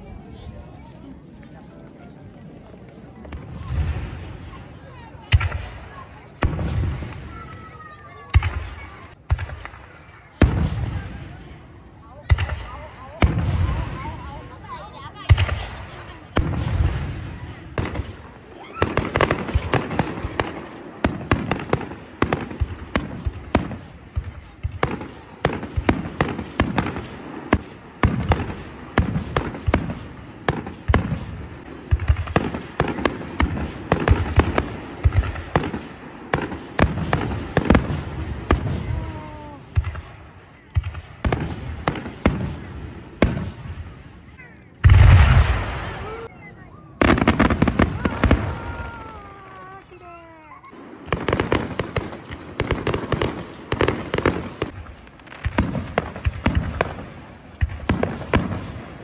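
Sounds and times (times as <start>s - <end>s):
firework crackle: 0.0s - 59.0s
firework booms and bangs: 3.3s - 59.0s.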